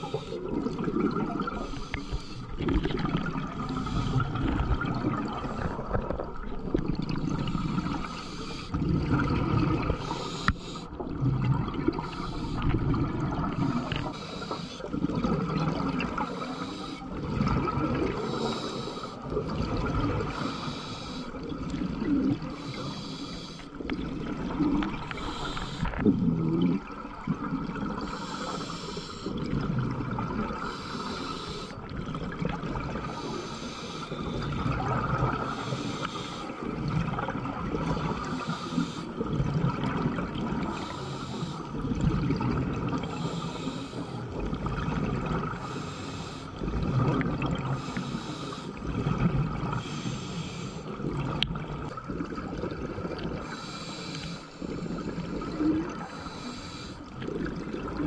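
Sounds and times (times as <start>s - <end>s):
diver breathing through regulator: 0.0s - 0.6s, 1.4s - 3.0s, 3.6s - 4.7s, 7.2s - 8.8s, 9.8s - 11.0s, 11.9s - 15.0s, 16.1s - 19.4s, 20.2s - 21.4s, 22.4s - 23.8s, 24.8s - 26.6s, 28.0s - 29.4s, 30.5s - 31.8s, 33.0s - 34.7s, 35.4s - 36.7s, 37.9s - 39.3s, 40.6s - 41.8s, 43.0s - 44.4s, 45.5s - 46.8s, 47.6s - 48.9s, 49.7s - 51.0s, 53.4s - 57.2s
exhaled bubbles rushing: 0.0s - 20.5s, 21.3s - 22.9s, 23.7s - 33.5s, 34.1s - 38.5s, 39.1s - 40.9s, 41.7s - 43.4s, 44.2s - 45.8s, 46.6s - 47.9s, 48.7s - 50.0s, 50.8s - 53.6s, 57.0s - 58.0s.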